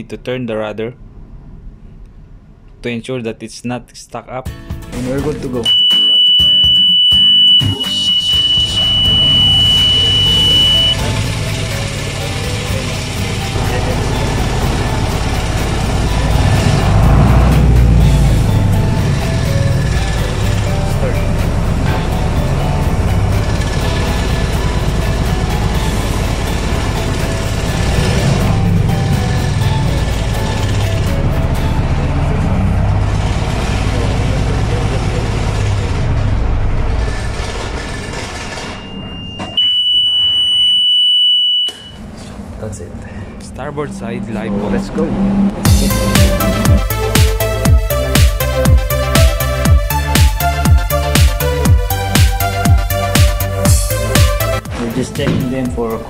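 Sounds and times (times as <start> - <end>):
high warning buzzer: 5.7 - 12.6, 38.7 - 42.0
boat engine running: 8.0 - 38.9, 42.0 - 56.0.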